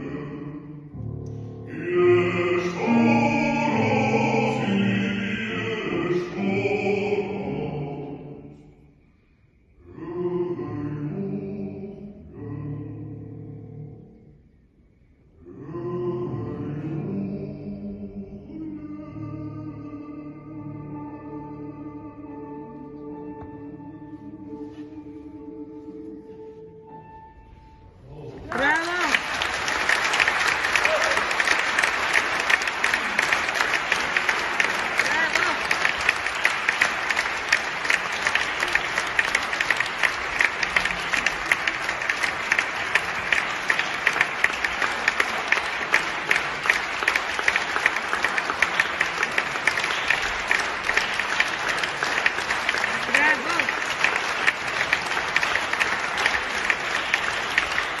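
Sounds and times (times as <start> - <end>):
audience applauding: 28.4 - 58.0.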